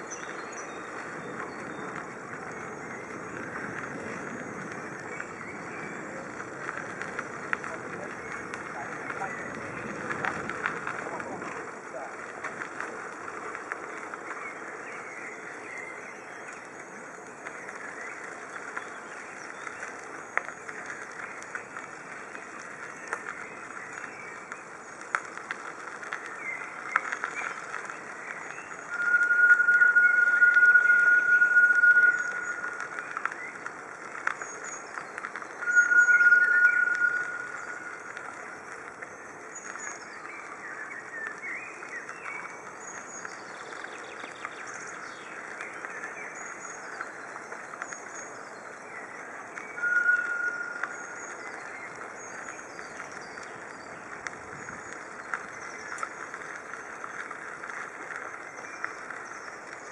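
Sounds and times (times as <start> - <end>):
small birds chirping: 12.9 - 59.9
high-pitched squeal: 28.9 - 33.2, 35.6 - 38.1, 49.8 - 51.2.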